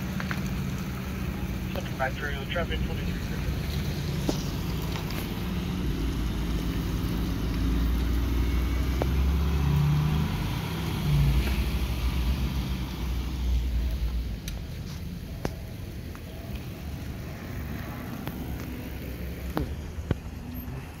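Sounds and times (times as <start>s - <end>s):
emergency vehicle engines idling: 0.0s - 21.0s.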